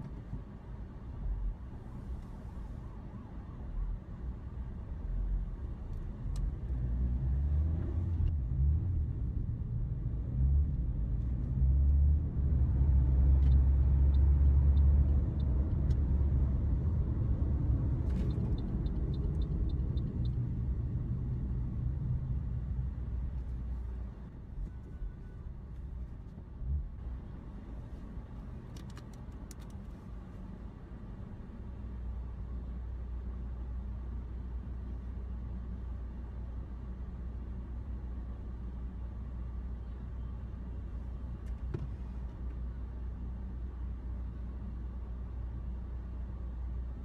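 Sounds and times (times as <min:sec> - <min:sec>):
car engine and road rumble: 0:00.0 - 0:47.0.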